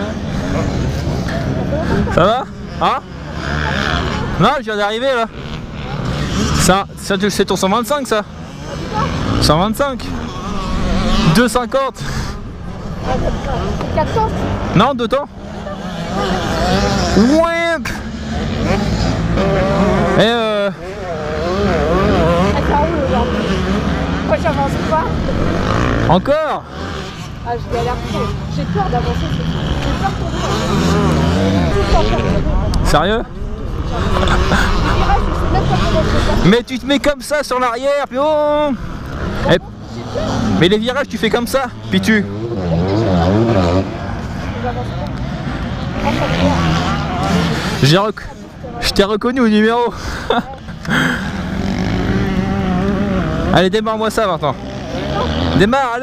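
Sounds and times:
dirt bike engines revving: 0:00.0 - 0:56.0
young men talking: 0:00.0 - 0:56.0.

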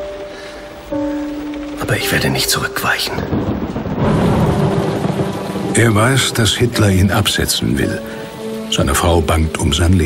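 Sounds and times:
steady rain: 0:00.0 - 0:10.0
thunder rumbling: 0:01.2 - 0:08.4.

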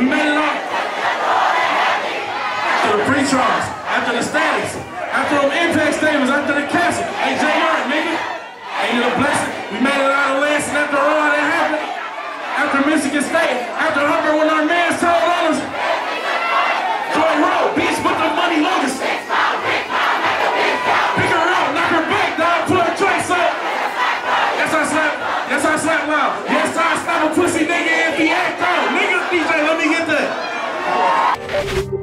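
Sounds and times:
crowd shouting: 0:00.0 - 0:31.4.

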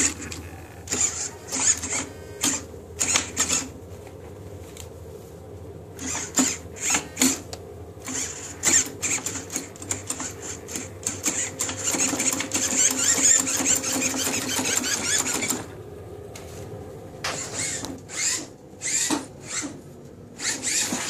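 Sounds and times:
servo geared motor whirring: 0:00.0 - 0:03.8, 0:05.9 - 0:15.7, 0:17.2 - 0:21.0.

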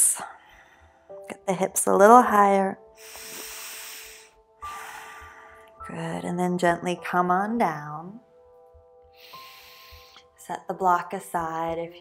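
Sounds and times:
soft background music: 0:00.0 - 0:12.0
woman breathing deeply: 0:00.3 - 0:01.2, 0:02.9 - 0:05.8, 0:09.0 - 0:10.4.

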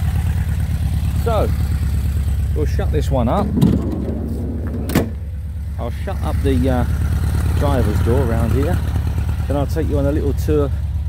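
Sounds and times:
van engine idling: 0:00.0 - 0:11.0
van panel slamming shut: 0:03.4 - 0:05.3.

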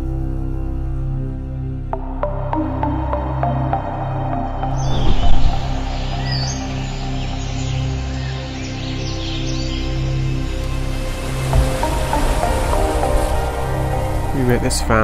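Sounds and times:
background music with bass line: 0:00.0 - 0:15.0
small birds chirping: 0:04.7 - 0:10.5.

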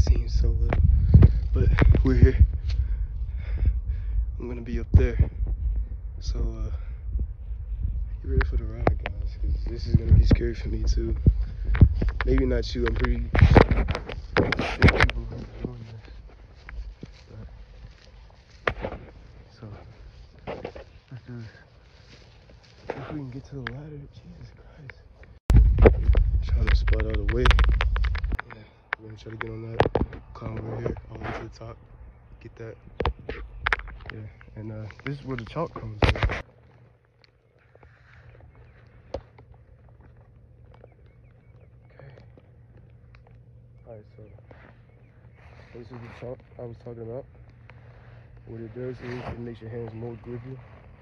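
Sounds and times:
low outdoor rumble: 0:00.0 - 0:51.0
footsteps through tall grass: 0:07.4 - 0:24.5, 0:33.1 - 0:51.0.

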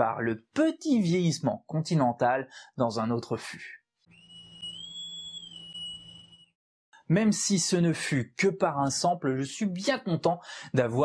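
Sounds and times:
high whistle-like electronic tone: 0:04.1 - 0:06.6.

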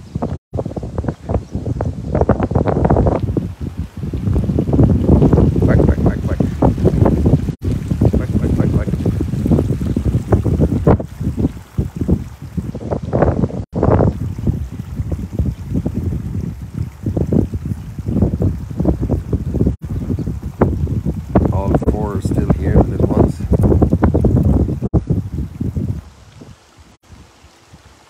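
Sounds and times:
wind buffeting microphone: 0:00.0 - 0:27.9.

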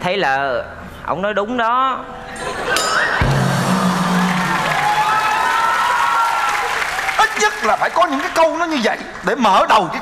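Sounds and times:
audience applauding and cheering: 0:03.2 - 0:09.5.

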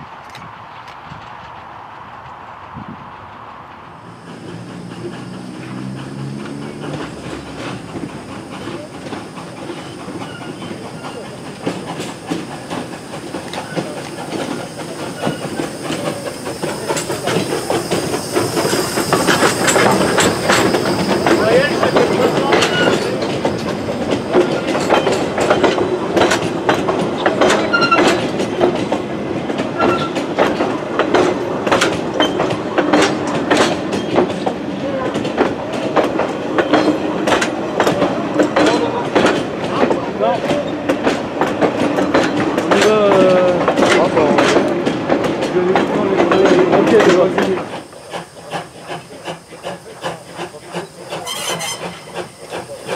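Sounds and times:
steam locomotive passing: 0:00.0 - 0:52.9
train wheels clattering over rail joints: 0:04.0 - 0:52.9
faint wheel squeal: 0:08.6 - 0:11.4, 0:13.5 - 0:23.3, 0:27.6 - 0:28.1, 0:49.1 - 0:52.9.

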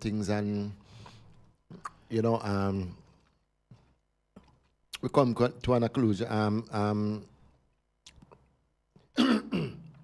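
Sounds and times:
man clearing his throat: 0:09.1 - 0:10.0.

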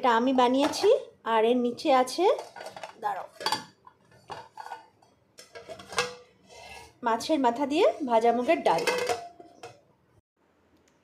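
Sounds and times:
steel lid clattering on pot: 0:02.4 - 0:06.3, 0:08.6 - 0:09.8.

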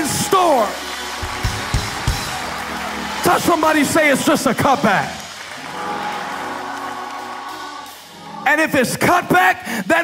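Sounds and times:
congregation applauding: 0:00.0 - 0:09.4.

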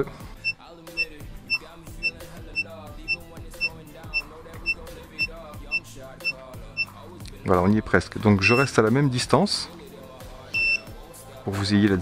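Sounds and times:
music: 0:00.0 - 0:12.0
buzzer short high beeps: 0:00.4 - 0:06.9, 0:08.4 - 0:08.7, 0:10.6 - 0:10.9.

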